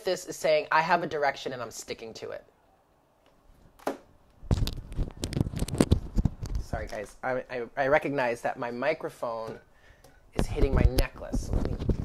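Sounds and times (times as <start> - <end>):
microphone knocking against necklace: 3.8 - 6.7, 10.4 - 12.0.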